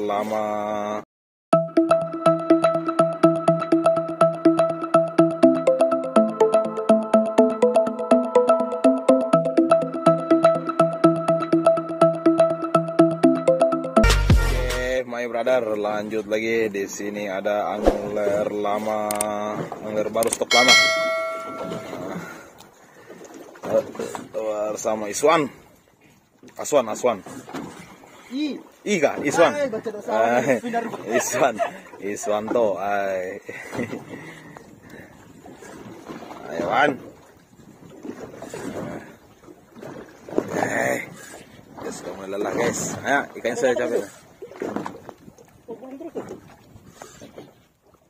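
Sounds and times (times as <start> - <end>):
notification bell chime: 20.5 - 22.2
thin steady high tone: 20.5 - 22.2.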